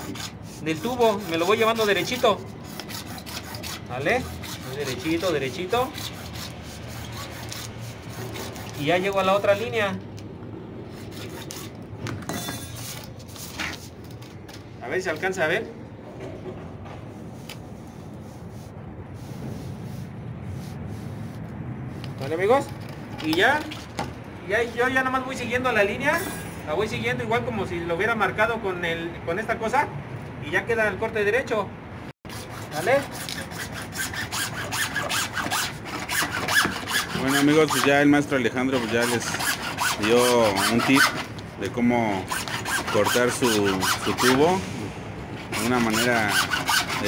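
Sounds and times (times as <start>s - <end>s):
hacksaw cutting plastic pipe: 0.0s - 9.6s, 32.3s - 41.4s, 42.2s - 44.6s, 45.4s - 47.0s
saw blade squeaking: 0.0s - 9.8s, 12.3s - 13.2s, 32.3s - 41.4s, 42.2s - 44.6s, 45.5s - 47.0s.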